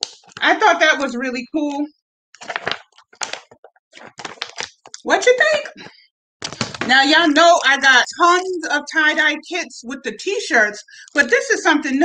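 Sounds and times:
plastic pouch crinkling: 2.4 - 5.0, 6.4 - 7.8.

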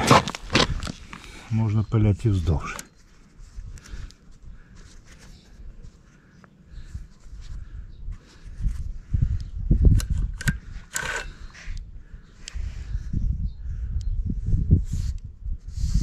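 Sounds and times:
microphone handling noise: 0.0 - 1.4
wind rumbling on microphone: 6.7 - 16.0
sharp clicks of chainsaw chain: 10.0 - 11.4.

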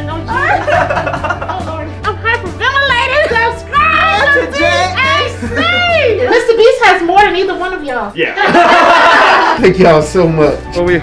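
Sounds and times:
background music with low bass: 0.0 - 11.0
excited voices exclaiming: 2.6 - 6.6.

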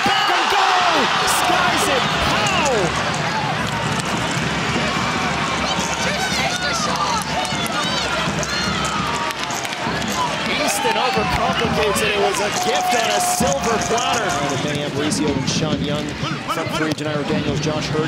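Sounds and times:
stadium crowd shouting: 0.0 - 15.4.

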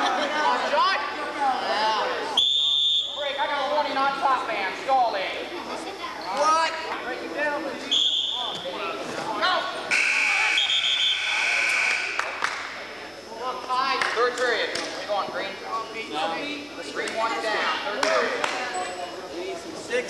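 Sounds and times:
crowd murmur: 0.0 - 13.7
referee's whistle blasts: 2.4 - 3.4, 7.9 - 8.6, 9.9 - 12.2.

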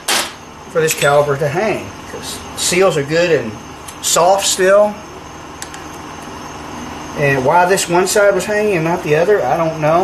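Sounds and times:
machine hum and hiss: 0.0 - 10.0.

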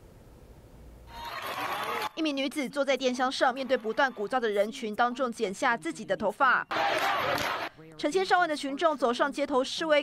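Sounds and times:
faint room hum: 0.0 - 1.4
crowd voices in street: 6.7 - 7.7.

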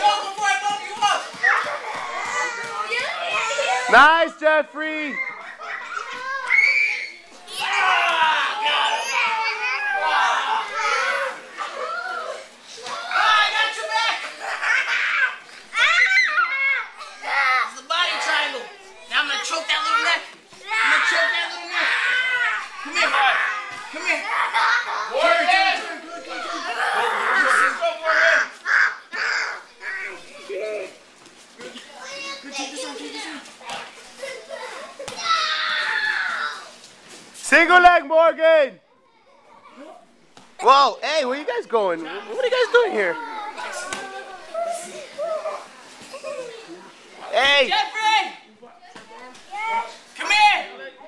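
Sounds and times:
people shouting: 6.3 - 14.1
child's high cry: 35.1 - 36.6.

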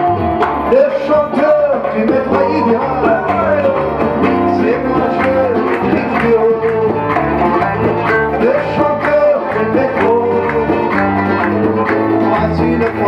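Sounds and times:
acoustic and electric guitars: 0.0 - 13.0
bass: 0.0 - 13.0
hand drum beat: 0.0 - 13.0
sliding melody line: 0.7 - 11.5.

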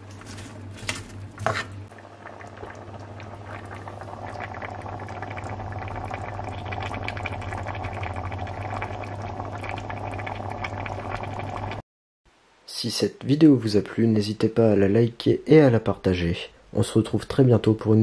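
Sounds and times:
food sizzling and bubbling in pan: 1.2 - 11.8.

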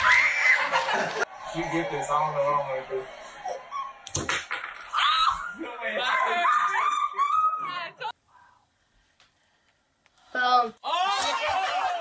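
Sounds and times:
people screaming and shrieking: 0.0 - 2.0, 3.2 - 4.2, 4.9 - 8.2, 10.8 - 12.0.

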